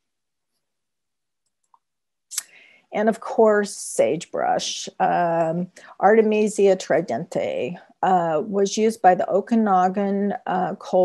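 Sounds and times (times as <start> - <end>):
woman speaking: 2.3 - 11.0
short breath: 2.4 - 2.9.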